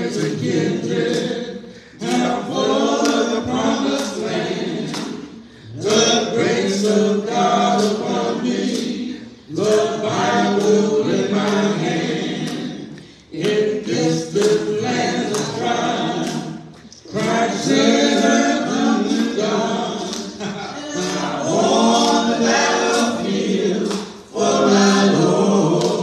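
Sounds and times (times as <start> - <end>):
congregation singing unaccompanied: 0.0 - 26.0.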